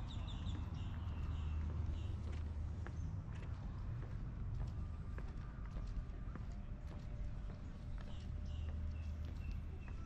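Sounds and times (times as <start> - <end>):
footsteps on wooden boardwalk: 0.1 - 10.0.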